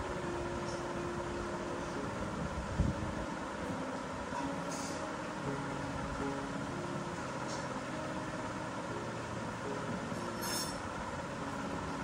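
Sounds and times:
background hum and hiss: 0:00.0 - 0:12.0
high-pitched squeal: 0:10.1 - 0:11.0.

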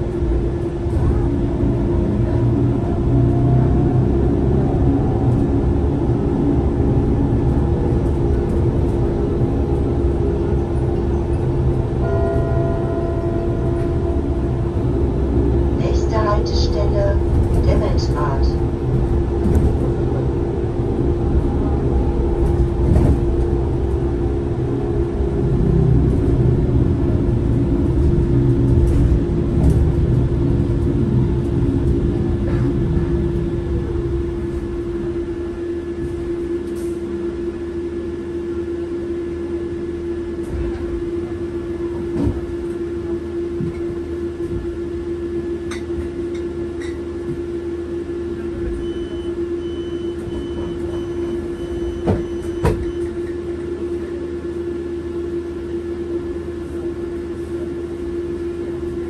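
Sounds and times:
low road rumble: 0:00.0 - 0:49.5.

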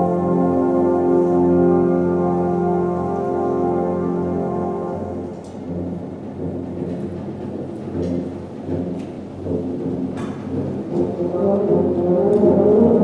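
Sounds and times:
brass chords: 0:00.0 - 0:13.0
low percussion drum roll: 0:01.6 - 0:13.0.

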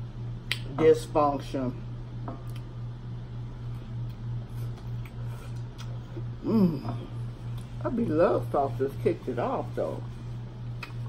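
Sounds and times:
pulsing low hum: 0:01.6 - 0:11.0
person chewing pizza: 0:03.6 - 0:07.8.

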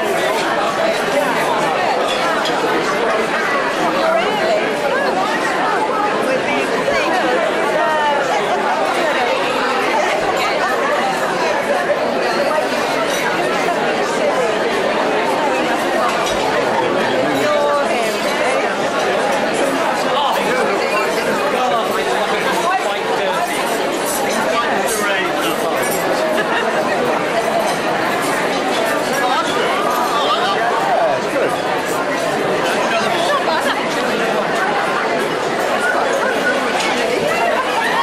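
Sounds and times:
hubbub of overlapping conversation: 0:00.0 - 0:38.0.

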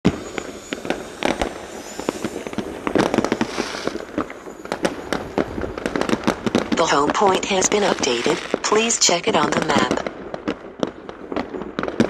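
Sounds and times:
fireworks bangs and pops: 0:00.0 - 0:12.0
fireworks hissing: 0:00.1 - 0:10.1.

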